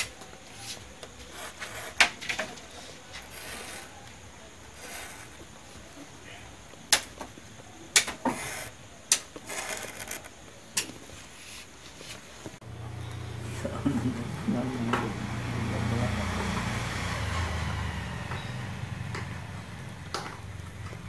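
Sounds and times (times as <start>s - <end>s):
stylus scratching a leaf: 0.5s - 5.5s, 8.2s - 8.8s, 9.4s - 10.3s.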